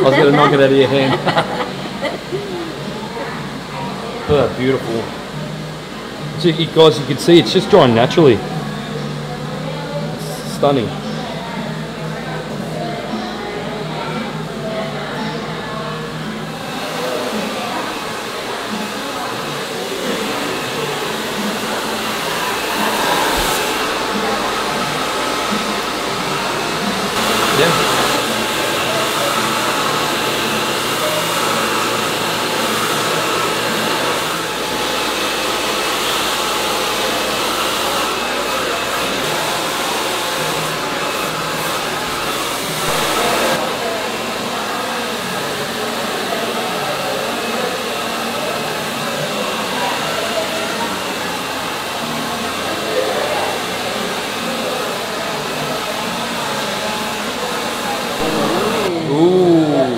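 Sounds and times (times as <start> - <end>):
hair dryer blowing: 0.0 - 8.9, 16.1 - 59.2.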